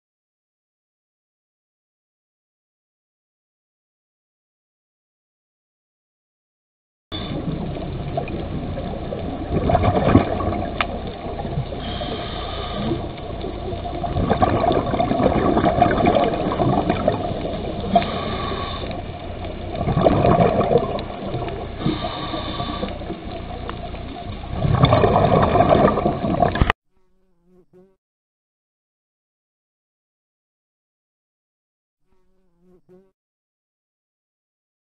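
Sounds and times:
muffled underwater water noise: 0:07.1 - 0:26.8
water gurgling: 0:07.2 - 0:26.8.

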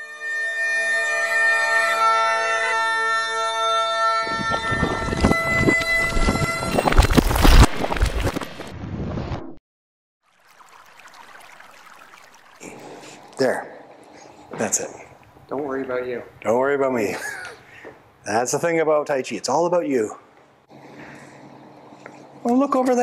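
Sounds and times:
bagpipe music: 0:00.0 - 0:07.2
stone breaking crash: 0:06.8 - 0:09.0.

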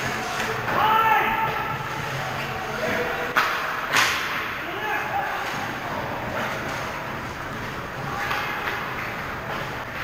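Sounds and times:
skates scraping ice: 0:00.0 - 0:10.0
sharp crack of hockey hit: 0:03.4 - 0:04.5.

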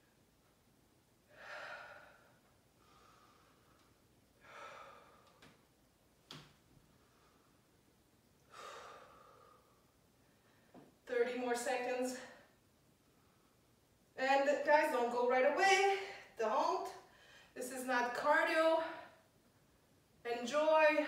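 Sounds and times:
woman exhaling: 0:01.3 - 0:03.6, 0:04.4 - 0:05.4, 0:08.5 - 0:09.7.

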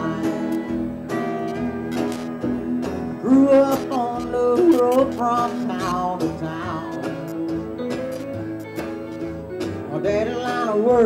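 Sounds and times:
country band playing: 0:00.0 - 0:11.0
sliding guitar notes: 0:00.0 - 0:11.0
person singing: 0:03.2 - 0:07.5, 0:09.9 - 0:11.0.

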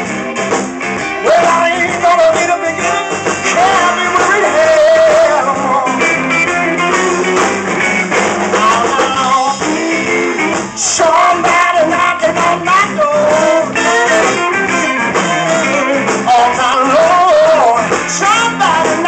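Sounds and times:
electric bass: 0:00.0 - 0:19.0
electric guitar: 0:00.0 - 0:19.0
man singing: 0:01.2 - 0:19.0.

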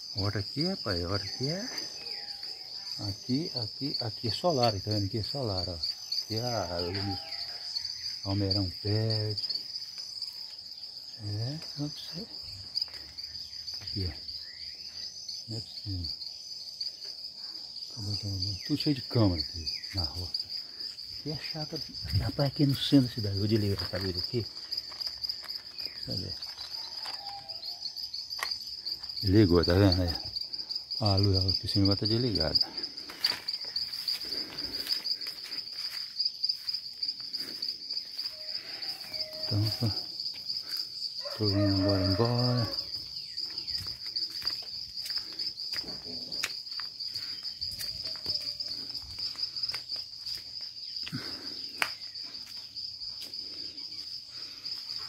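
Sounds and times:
insects trilling: 0:00.0 - 0:55.0.

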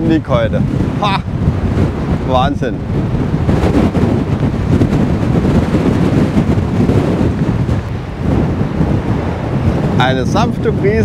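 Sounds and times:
strong wind buffeting microphone: 0:00.0 - 0:11.0.

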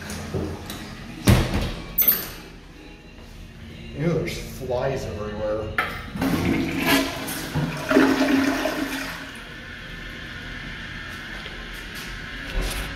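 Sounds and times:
toilet flushing: 0:06.1 - 0:10.0.

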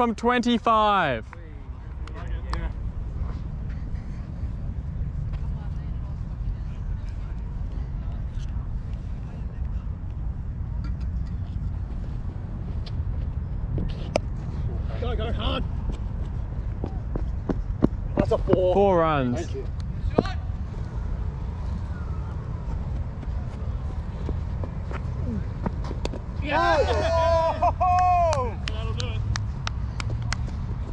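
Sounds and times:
wind rumble on microphone: 0:02.7 - 0:18.7.

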